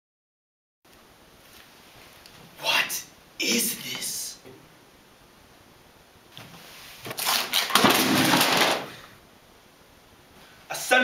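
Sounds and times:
boxes clattering on hard floor: 7.1s - 9.0s.

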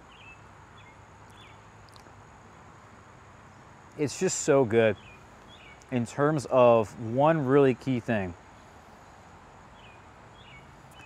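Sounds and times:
steady low hiss: 0.0s - 11.0s
high bird chirps: 4.9s - 5.9s.

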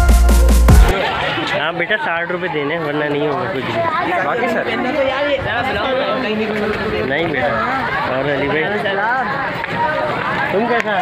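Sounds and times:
people chattering: 0.8s - 11.0s.

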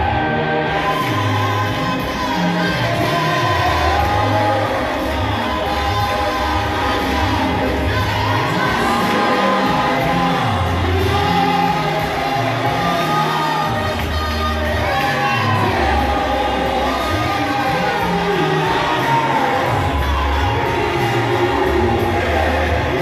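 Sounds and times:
amplified bass line: 0.0s - 23.0s
group singing gospel song: 0.0s - 23.0s.

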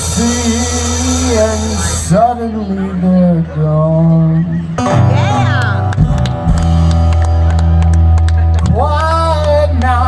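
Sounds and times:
bass notes: 0.0s - 10.0s
guitar chords: 4.0s - 10.0s.

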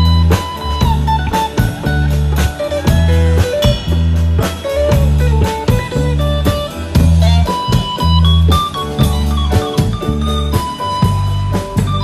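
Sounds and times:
bass notes: 0.0s - 12.0s
drum kit: 0.0s - 12.0s
electric guitar with bent notes: 0.0s - 12.0s.

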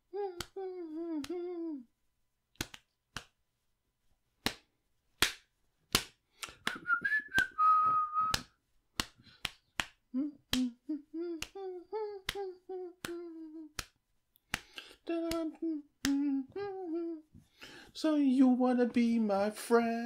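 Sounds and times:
man humming: 0.0s - 1.9s, 10.1s - 13.8s, 14.8s - 17.3s
man snapping fingers: 0.2s - 1.6s, 2.5s - 3.4s, 4.4s - 7.6s, 8.3s - 16.3s
man whistling: 6.6s - 8.5s.

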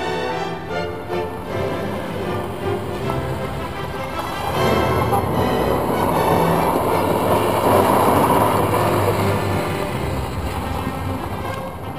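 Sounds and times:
tyres sliding over gravel: 0.8s - 11.9s
car engine running hard: 1.2s - 11.9s.

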